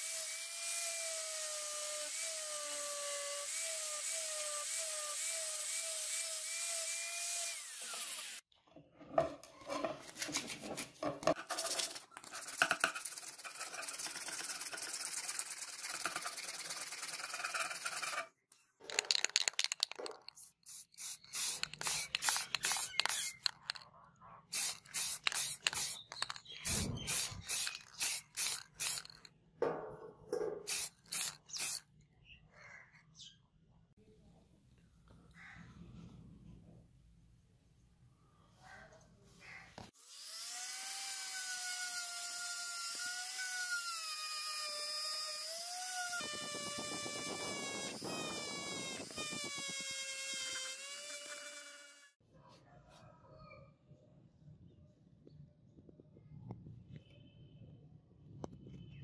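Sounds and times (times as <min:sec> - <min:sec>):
angle grinder grinding metal: 0:00.0 - 0:08.5, 0:18.9 - 0:23.8, 0:24.5 - 0:29.3, 0:40.1 - 0:52.2.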